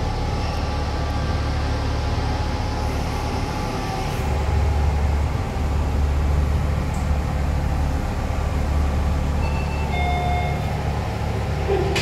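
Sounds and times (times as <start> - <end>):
lift machinery humming: 0.0 - 12.0
lift arrival click: 11.6 - 12.0.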